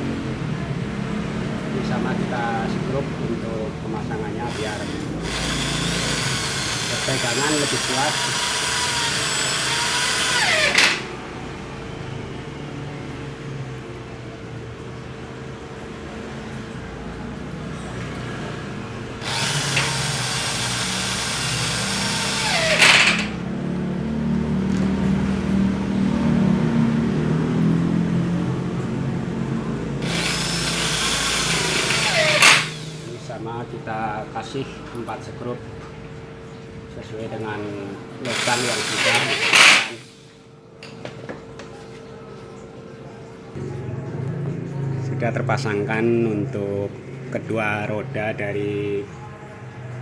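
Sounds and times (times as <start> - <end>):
electric drill driving screws: 4.4 - 11.1, 19.2 - 23.4, 30.0 - 33.1, 38.2 - 40.4.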